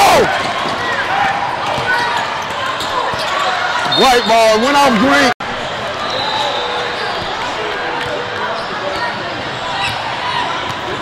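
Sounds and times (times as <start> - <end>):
chatter of people in a hall: 5.4 - 11.0.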